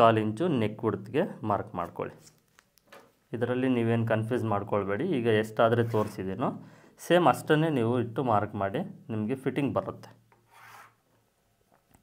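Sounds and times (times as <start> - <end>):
chalk scratching on fabric: 5.8 - 6.2, 10.5 - 11.0.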